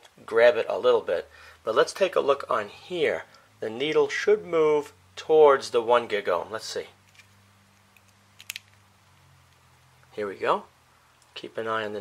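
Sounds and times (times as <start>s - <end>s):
low steady hum: 0.0s - 12.0s
faint clicks of handled parts: 7.0s - 9.7s.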